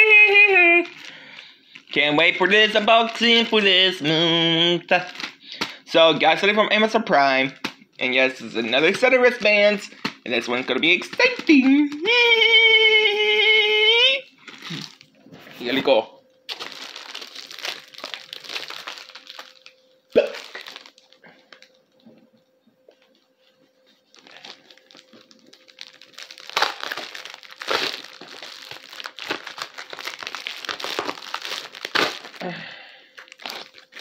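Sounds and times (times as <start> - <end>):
plastic packaging crinkling and tearing: 0.4 - 4.3, 4.9 - 5.8, 8.5 - 12.1, 14.4 - 15.1, 16.5 - 22.0, 22.9 - 34.0.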